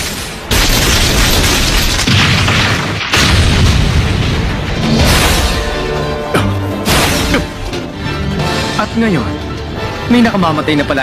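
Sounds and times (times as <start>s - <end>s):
heavy crashing and booming: 0.0s - 6.2s.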